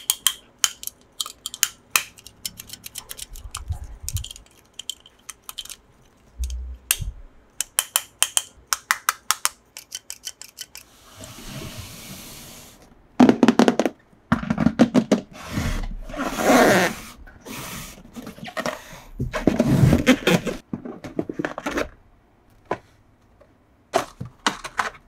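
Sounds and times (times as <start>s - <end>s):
plastic toy clicking: 0.0s - 5.8s, 7.6s - 10.9s.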